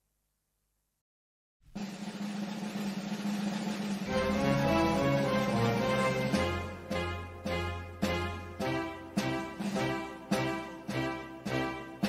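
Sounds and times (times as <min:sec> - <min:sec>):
orchestral drum roll: 0:01.7 - 0:12.0
held low orchestral note: 0:04.1 - 0:10.6.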